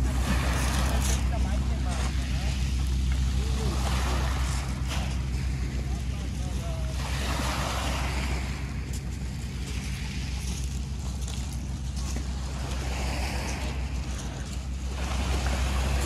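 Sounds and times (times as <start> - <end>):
waves washing onto pebble beach: 0.0 - 16.0
wind rumble on microphone: 0.0 - 16.0.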